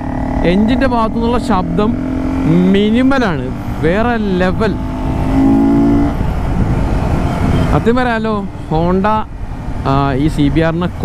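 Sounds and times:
motorcycle engine running: 0.0s - 8.0s
wind and road rumble: 0.0s - 11.0s.

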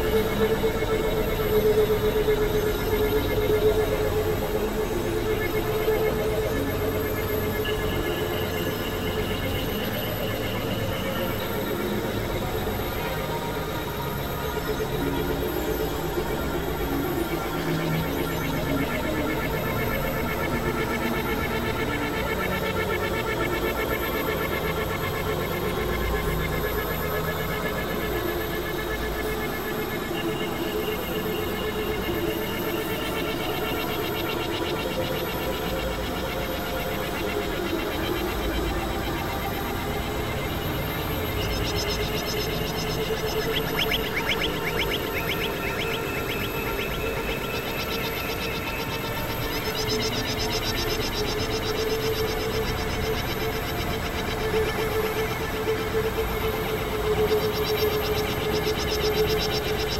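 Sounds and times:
synthesizer drone music: 0.0s - 59.9s.

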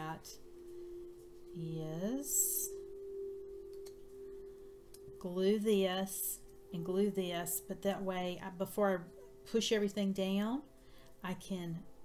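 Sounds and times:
steady tone: 0.0s - 10.5s.

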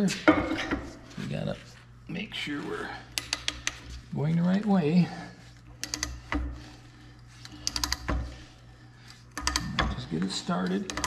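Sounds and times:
pipe threader ratchet clicks: 3.1s - 3.8s, 5.8s - 6.5s, 7.4s - 8.4s, 9.1s - 11.0s.

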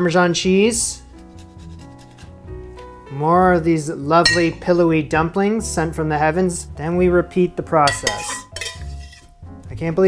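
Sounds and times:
soft background music: 0.0s - 10.0s
cheese grating on metal grater: 1.2s - 2.4s.

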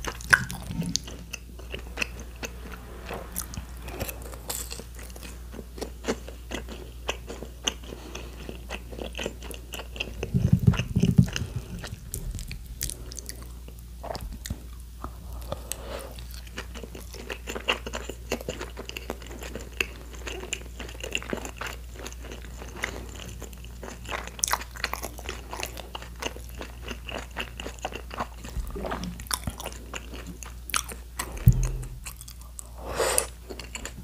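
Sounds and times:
close chewing with mouth clicks: 0.0s - 2.6s, 4.6s - 34.0s
low thump: 31.4s - 32.1s.

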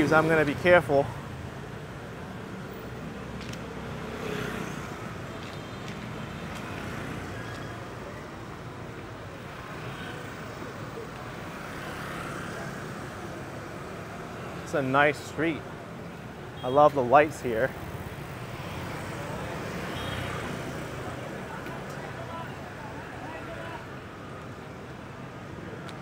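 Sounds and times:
motorbike and scooter traffic: 0.0s - 26.0s.

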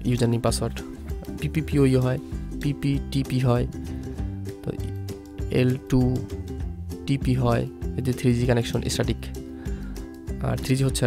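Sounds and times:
person speaking: 0.0s - 9.4s
background music with held notes: 0.0s - 11.0s.

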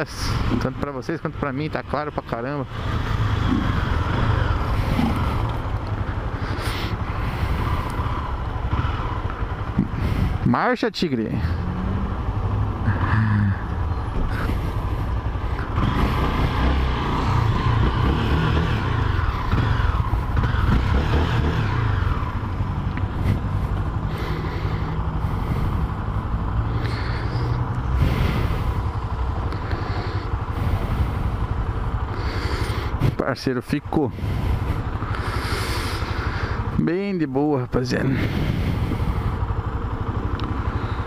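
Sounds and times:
motorcycle engine rumbling: 0.0s - 41.0s.

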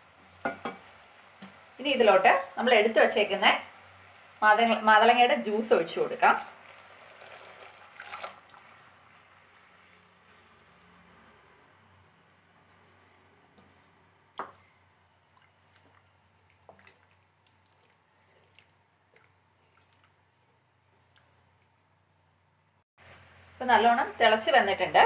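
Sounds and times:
juice pouring into boiling liquid: 6.2s - 11.0s, 15.2s - 21.9s
wooden spoon stirring: 12.6s - 21.9s.

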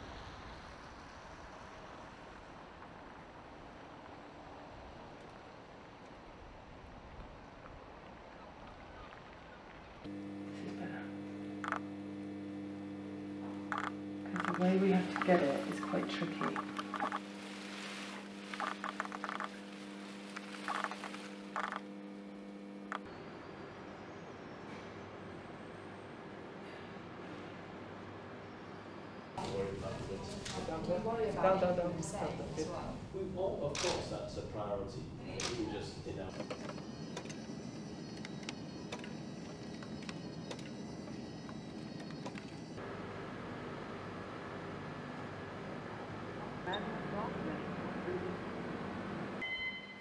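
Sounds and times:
steady electrical hum: 10.0s - 36.3s
high-pitched whine: 10.1s - 26.5s
sharp clicks: 11.6s - 11.9s, 13.7s - 15.3s, 20.3s - 21.9s, 22.9s - 23.1s, 33.7s - 34.1s.

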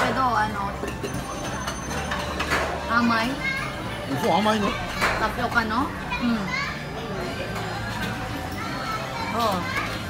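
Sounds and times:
children chattering and calling out: 2.8s - 10.0s.

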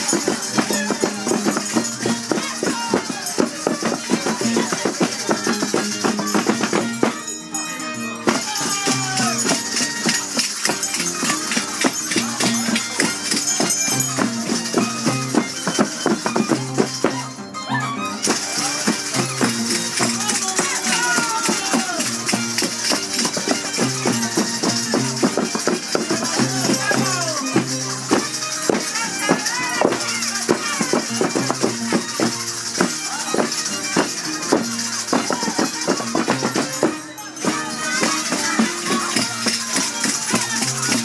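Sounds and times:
violin melody: 0.0s - 41.0s.

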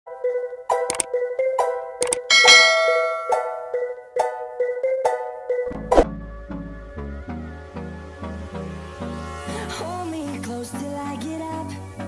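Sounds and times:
plucked notes music: 0.1s - 8.6s
bright bell-like note: 2.3s - 3.8s.

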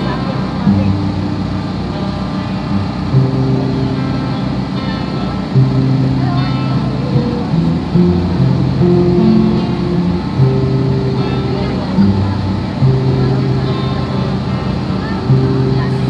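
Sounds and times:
slow music of low chords: 0.0s - 16.0s
voices: 0.0s - 16.0s.

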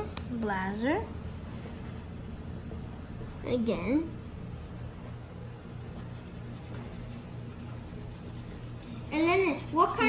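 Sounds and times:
pencil scribbling on paper: 5.1s - 10.0s.

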